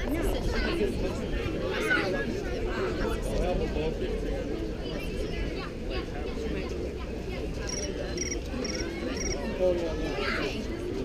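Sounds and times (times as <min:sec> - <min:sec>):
low background murmur: 0:00.0 - 0:11.0
cricket chirping: 0:07.7 - 0:09.4.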